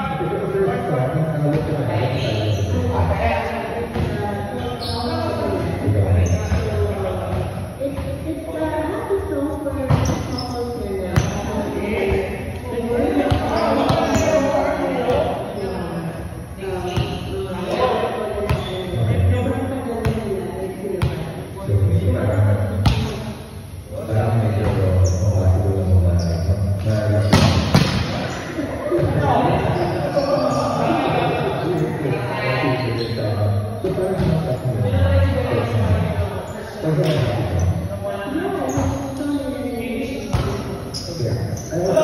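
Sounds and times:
people chattering: 0.0s - 42.0s
voices in echoing hall: 0.0s - 42.0s
ball bouncing on hard floor: 27.3s - 28.3s.

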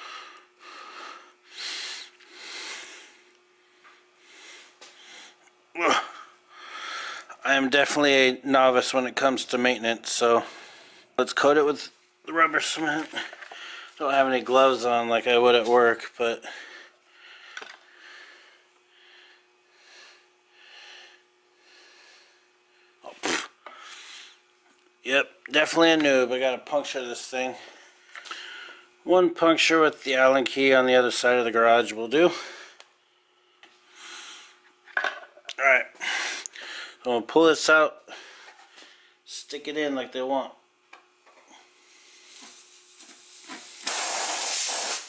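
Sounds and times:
person breathing through nose: 0.0s - 3.2s, 23.2s - 24.4s, 41.5s - 45.0s
faint steady hum: 0.0s - 45.0s.

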